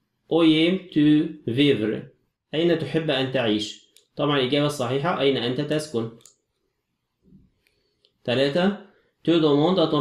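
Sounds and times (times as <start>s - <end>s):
man speaking: 0.3s - 6.3s, 8.2s - 10.0s.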